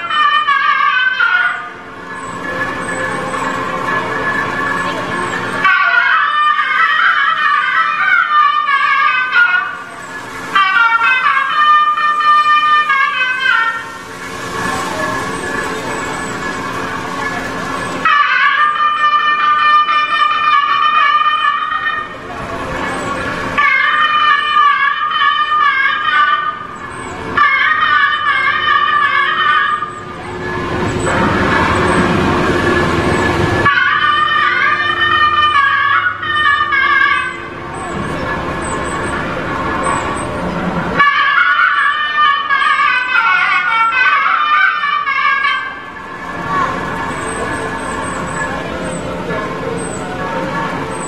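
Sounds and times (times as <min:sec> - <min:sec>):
loud reed pipe melody: 0:00.0 - 0:51.0.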